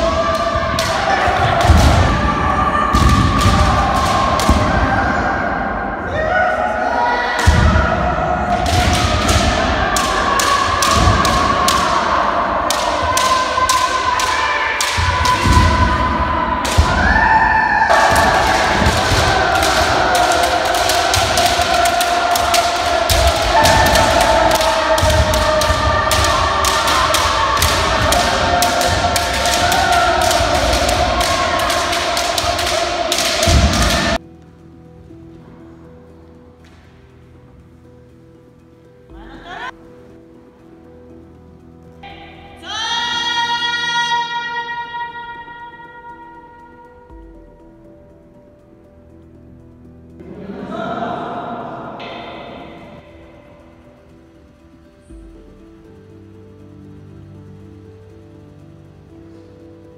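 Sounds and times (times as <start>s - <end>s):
people shouting: 0.0s - 34.2s.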